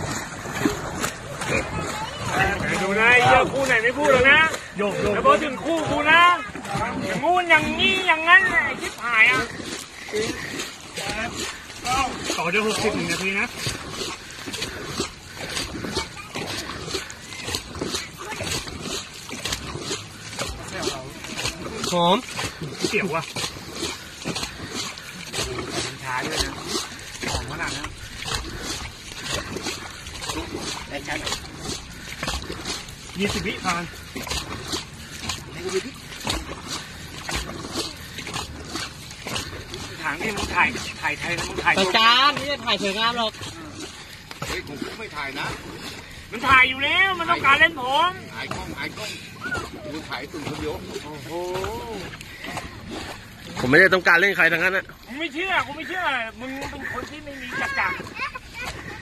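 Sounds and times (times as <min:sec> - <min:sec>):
paddles splashing in water: 0:00.0 - 0:59.0.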